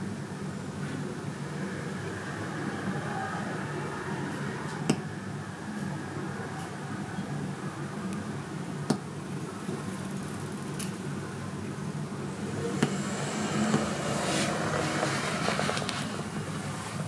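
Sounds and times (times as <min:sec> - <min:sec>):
low room hum: 0:00.0 - 0:17.0
road vehicle passing: 0:01.2 - 0:07.8, 0:11.0 - 0:17.0.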